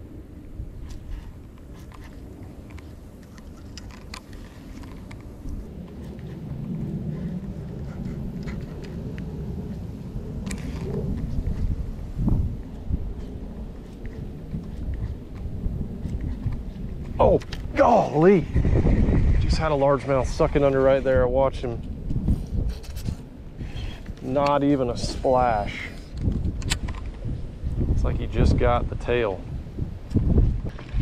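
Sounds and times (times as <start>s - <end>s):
wind rumbling on microphone: 0.0s - 31.0s.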